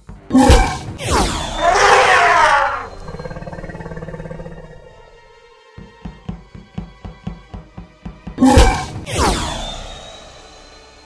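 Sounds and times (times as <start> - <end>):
cartoon animal roar: 1.6 - 5.2.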